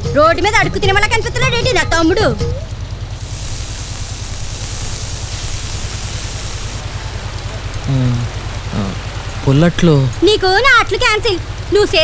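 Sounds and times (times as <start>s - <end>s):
watery hiss: 3.2s - 7.0s
boat engine chugging: 6.8s - 12.0s.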